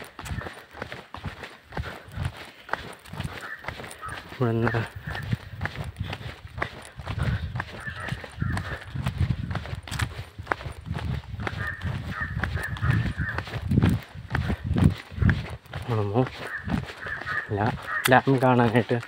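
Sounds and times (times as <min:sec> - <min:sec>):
footsteps on paved road: 0:00.0 - 0:19.0
man speaking: 0:04.2 - 0:05.4, 0:15.7 - 0:16.5, 0:17.2 - 0:19.0.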